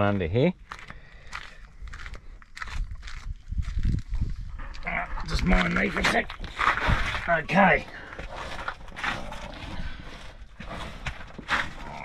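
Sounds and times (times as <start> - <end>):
footsteps crunching on gravel: 0.6 - 4.8.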